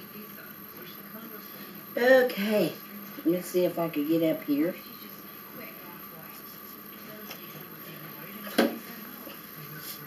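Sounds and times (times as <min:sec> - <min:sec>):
steady room hum: 0:00.0 - 0:10.0.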